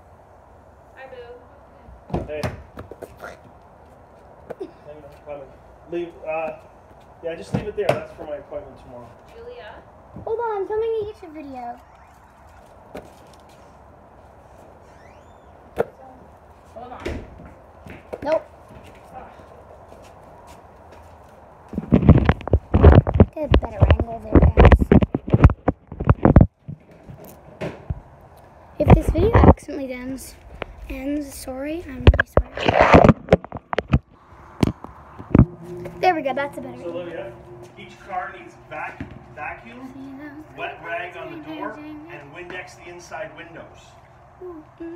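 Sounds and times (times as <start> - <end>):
faint low hum: 0.0 - 44.9
faint rising chirp: 11.4 - 12.9, 14.8 - 15.7, 34.2 - 40.6.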